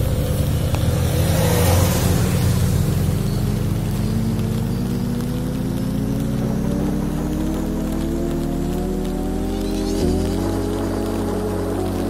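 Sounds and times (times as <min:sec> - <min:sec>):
rain on a wet road: 0:00.0 - 0:12.0
vehicle engine running: 0:00.0 - 0:12.0.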